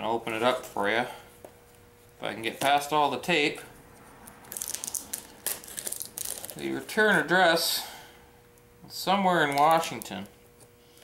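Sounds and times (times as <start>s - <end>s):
packing tape crackling and ripping: 4.4s - 6.7s.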